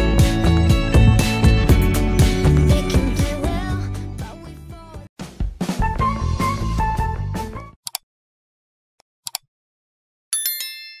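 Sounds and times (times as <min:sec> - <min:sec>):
mouse click sound effects: 0:09.2 - 0:09.5
notification bell ding: 0:10.4 - 0:11.0.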